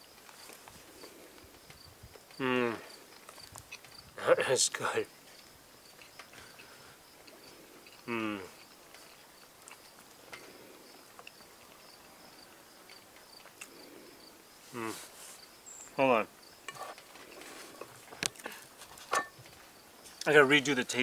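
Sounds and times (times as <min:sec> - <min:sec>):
insects chirping: 0:00.0 - 0:21.0
vocal murmurs: 0:02.4 - 0:02.9, 0:08.0 - 0:08.6, 0:14.7 - 0:15.1.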